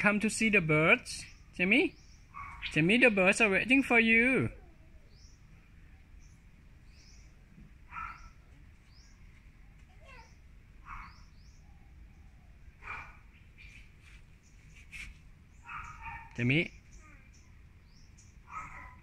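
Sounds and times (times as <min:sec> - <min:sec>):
small birds chirping: 0:00.0 - 0:19.0
lower bird calls: 0:01.2 - 0:03.4, 0:04.3 - 0:09.3, 0:10.2 - 0:19.0.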